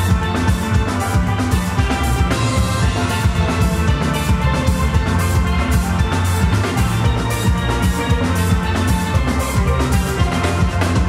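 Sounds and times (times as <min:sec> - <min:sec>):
steelband playing: 0:00.0 - 0:11.0.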